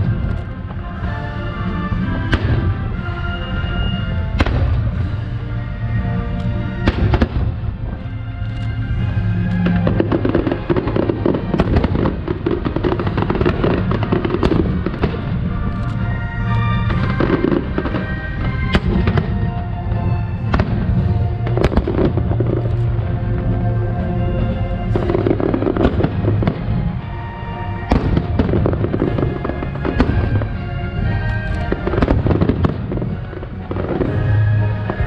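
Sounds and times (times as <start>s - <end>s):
fireworks bursting with bangs: 0.0s - 5.5s, 6.6s - 35.0s
music playing: 0.0s - 35.0s.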